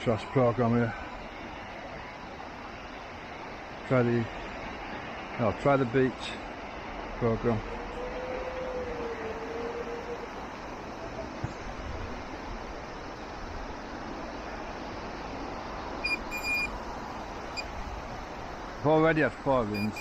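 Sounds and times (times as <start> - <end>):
outdoor background noise: 0.0 - 20.0
metal detector probe beeping: 16.0 - 16.7, 19.8 - 20.0.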